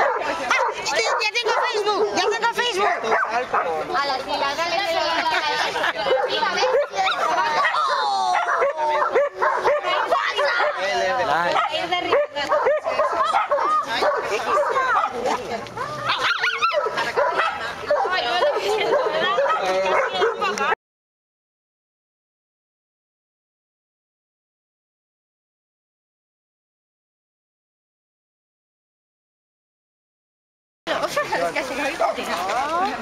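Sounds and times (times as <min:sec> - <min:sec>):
people's voices: 0:00.0 - 0:20.8, 0:30.9 - 0:33.0
dog yelping: 0:06.1 - 0:10.8, 0:11.6 - 0:15.2, 0:15.9 - 0:20.5
dog yipping and whining: 0:16.1 - 0:16.8.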